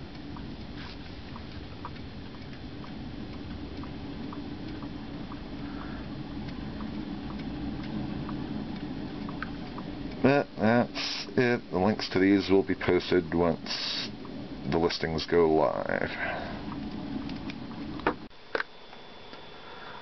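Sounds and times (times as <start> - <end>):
figurines ticking softly: 0.0 - 18.0
steady low hum: 0.0 - 20.0.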